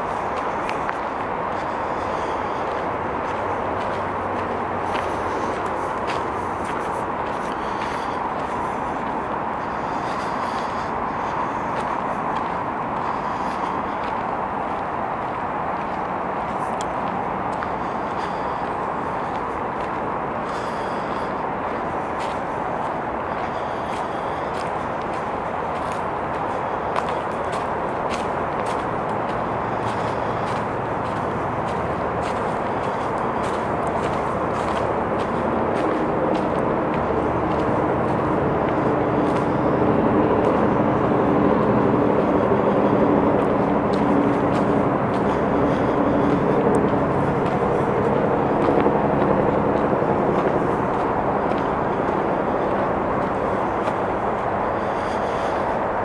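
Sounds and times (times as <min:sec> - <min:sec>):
distant traffic rumble: 0:00.0 - 0:56.0
footsteps crunching on gravel: 0:00.0 - 0:56.0
low drone of steady tones: 0:00.0 - 0:56.0.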